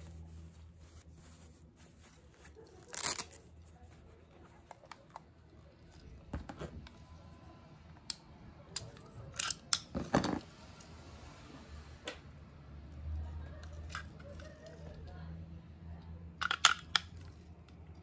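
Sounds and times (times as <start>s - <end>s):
satin cloth rustling: 0.0s - 4.2s
plastic toy clicks and knocks: 16.4s - 17.3s.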